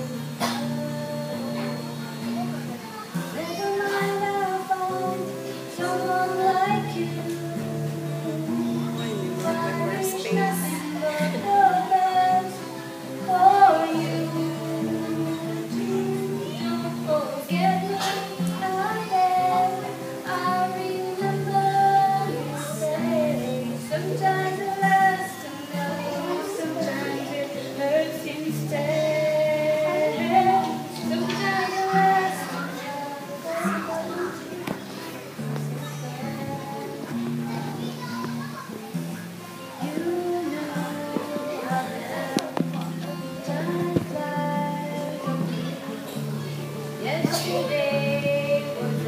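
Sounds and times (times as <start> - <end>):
acoustic guitar: 0.0 - 49.0
girl singing a slow ballad: 0.0 - 49.0.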